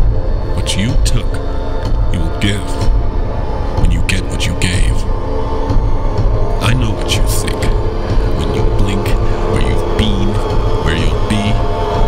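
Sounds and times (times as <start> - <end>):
low rumbling drone: 0.0 - 12.0.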